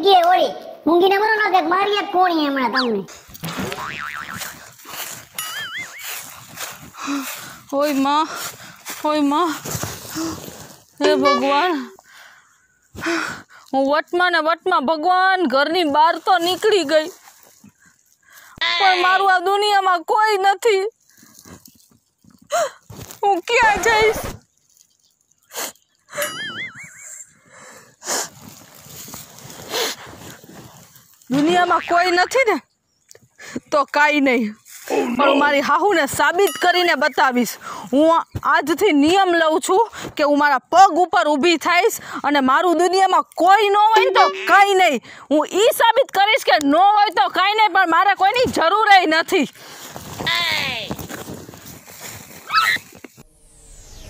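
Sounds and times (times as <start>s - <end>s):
cartoon boing sound effect: 3.5s - 4.4s, 44.0s - 44.6s
person speaking: 11.0s - 12.0s, 31.3s - 32.4s, 43.6s - 45.0s
wobbling high-pitched whine: 53.2s - 54.0s.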